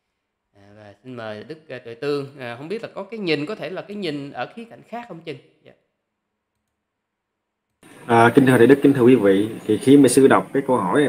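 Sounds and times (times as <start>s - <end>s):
man talking: 0.6s - 5.8s, 8.0s - 11.0s
faint clicks: 6.5s - 6.8s.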